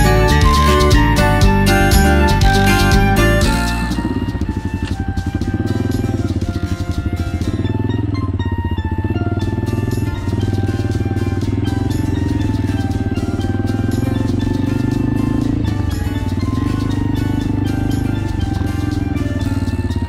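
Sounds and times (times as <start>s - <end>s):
background music: 0.0s - 20.0s
motorcycle engine running: 0.0s - 20.0s.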